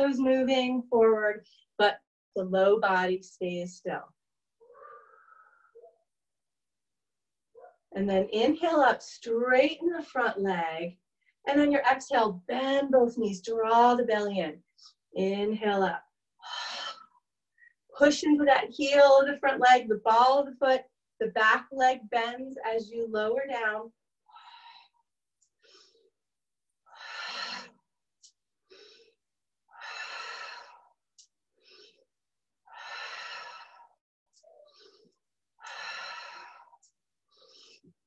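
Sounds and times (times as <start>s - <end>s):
person breathing deeply: 26.9s - 27.8s.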